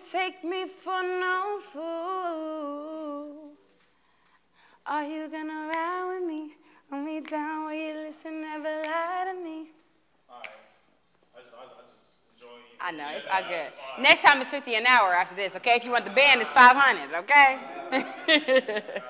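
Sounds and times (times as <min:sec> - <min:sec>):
woman singing unaccompanied: 0:00.0 - 0:03.6, 0:04.8 - 0:09.8.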